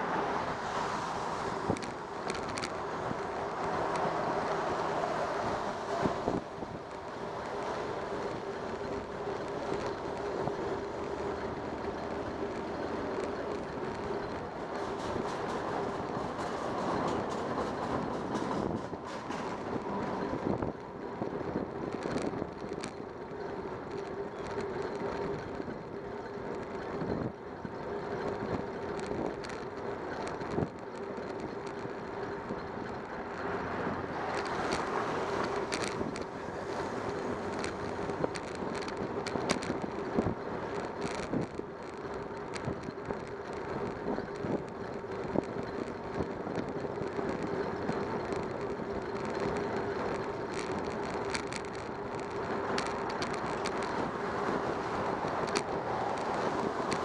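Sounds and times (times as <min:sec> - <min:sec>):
bicycle road hum: 0:00.0 - 0:57.0
wind noise: 0:00.0 - 0:57.0
bicycle clicks and rattles: 0:00.4 - 0:57.0.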